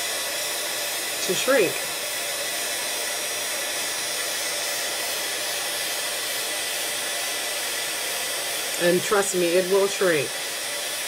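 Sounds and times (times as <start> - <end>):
heat tool fan blowing: 0.0 - 11.0.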